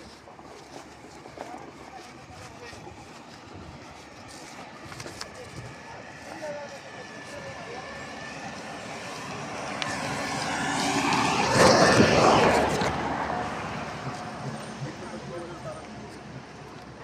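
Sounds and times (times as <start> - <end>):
vehicle passing: 1.6 - 17.0.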